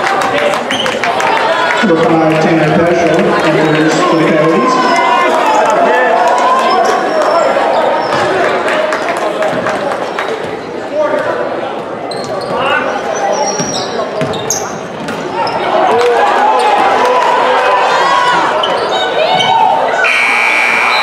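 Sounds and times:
voices echoing: 0.0s - 21.0s.

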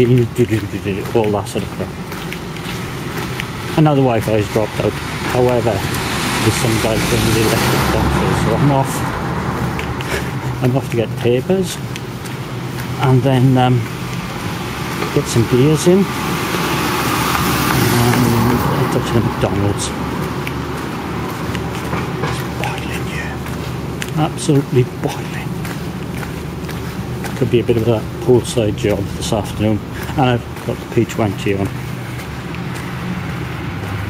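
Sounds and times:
road traffic noise: 0.0s - 34.0s
vehicle engine running: 0.0s - 34.0s.

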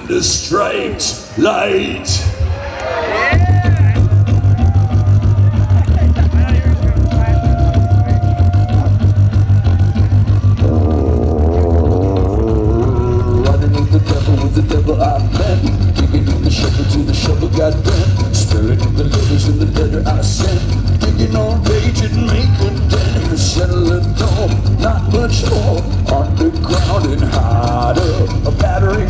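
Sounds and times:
fast percussive beat: 3.4s - 29.0s.

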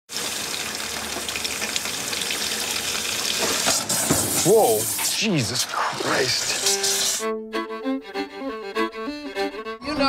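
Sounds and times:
faucet running: 0.1s - 7.2s.

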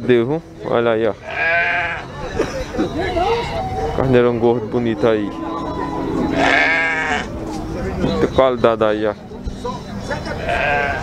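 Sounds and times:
sheep bleating: 1.2s - 2.1s, 6.2s - 7.3s, 10.2s - 11.0s.

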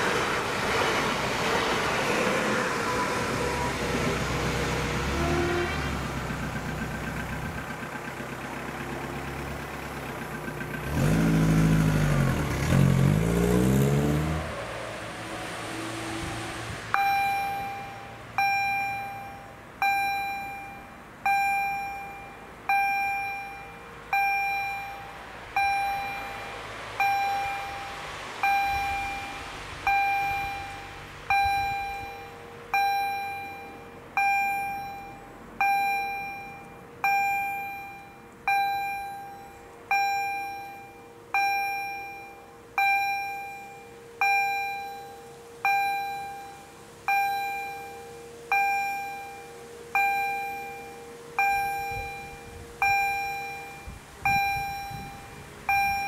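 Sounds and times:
level crossing warning bell: 16.9s - 56.0s.

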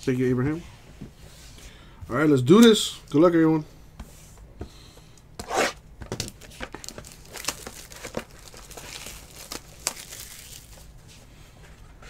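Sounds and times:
plastic crinkling: 6.1s - 11.0s
plastic shrink wrap tearing: 6.2s - 10.9s.

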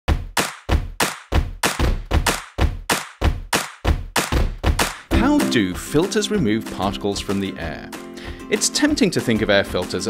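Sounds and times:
deep thumping beat: 0.1s - 9.1s.

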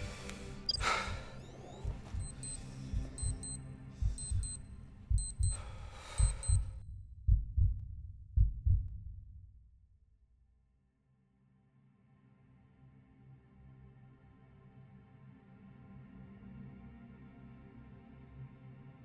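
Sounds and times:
film score music: 0.0s - 9.0s
high electronic beeps: 0.6s - 4.6s, 5.2s - 5.6s, 6.2s - 6.7s
heartbeat-like double thump: 1.8s - 9.1s.

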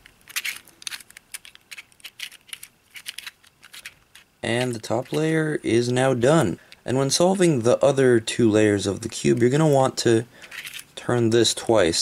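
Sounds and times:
plastic puzzle clicking: 0.0s - 5.3s, 10.4s - 10.9s.

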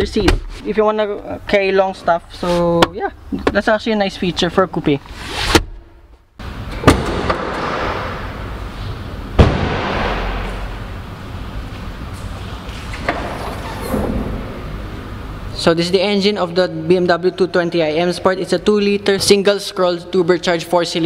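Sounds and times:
sharp knocks: 6.8s - 8.4s, 9.4s - 10.7s.

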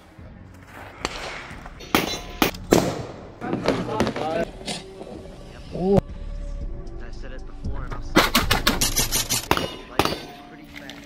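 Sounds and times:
rifle shot: 2.0s - 3.4s, 8.1s - 10.4s.

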